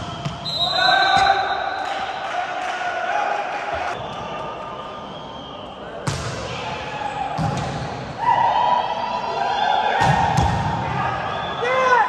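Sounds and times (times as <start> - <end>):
voices in a gym: 0.0 - 12.0.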